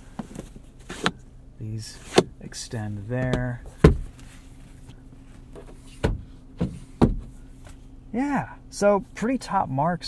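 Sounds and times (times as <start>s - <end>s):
low cabin hum: 0.0s - 10.0s.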